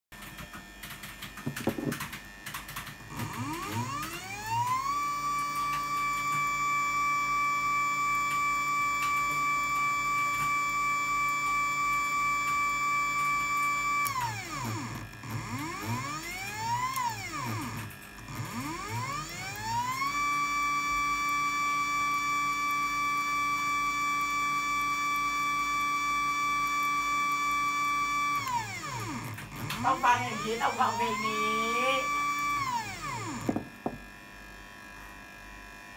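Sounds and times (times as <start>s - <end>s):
electric motor whining: 2.9s - 35.6s.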